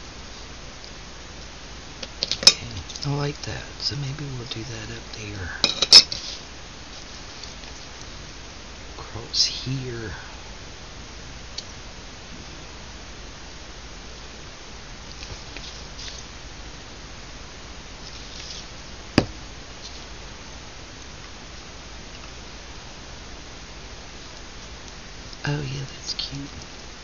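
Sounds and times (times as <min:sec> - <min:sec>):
steady hiss: 0:00.0 - 0:27.0.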